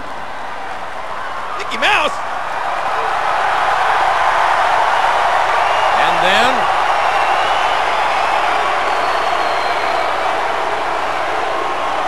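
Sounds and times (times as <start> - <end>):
arena crowd cheering: 0.0 - 12.0.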